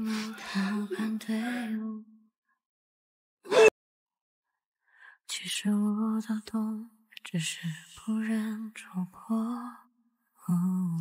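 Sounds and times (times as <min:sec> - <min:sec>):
woman singing a slow ballad: 0:00.0 - 0:02.1, 0:05.3 - 0:11.0.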